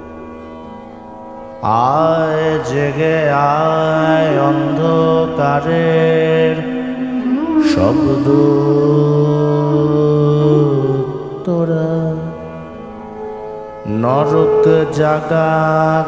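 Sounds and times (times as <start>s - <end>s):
man singing ornamented notes: 1.6s - 12.8s, 13.8s - 16.0s
steady drone: 1.8s - 16.0s.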